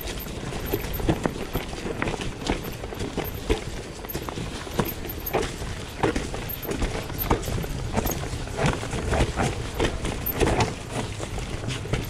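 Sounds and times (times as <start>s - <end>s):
bike rattling: 0.0s - 12.0s.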